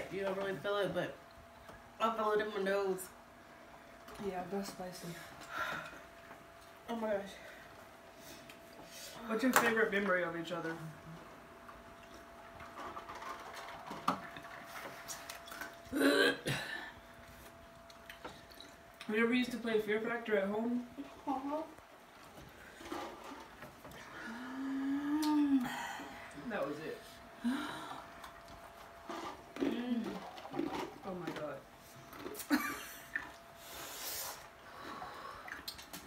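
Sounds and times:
woman coughing: 15.9s - 16.9s.

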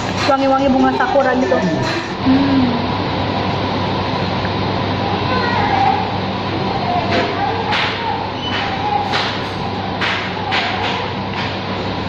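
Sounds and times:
air conditioning rushing hum: 0.0s - 12.0s.

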